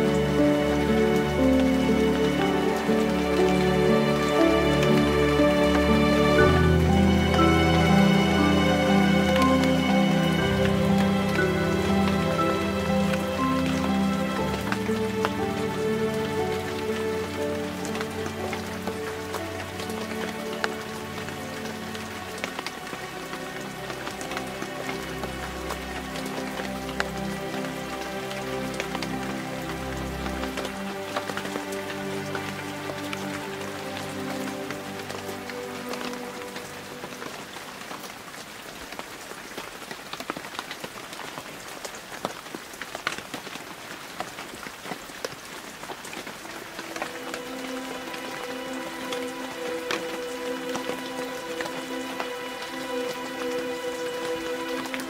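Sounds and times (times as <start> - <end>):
raindrop ticks: 0.0 - 55.0
soft meditation music: 0.0 - 55.0
steady rain: 0.0 - 55.0.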